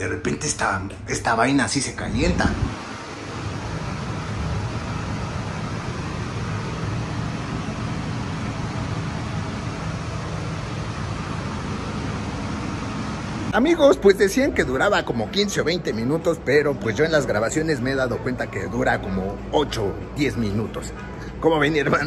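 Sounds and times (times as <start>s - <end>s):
air conditioning hum: 0.0s - 22.0s.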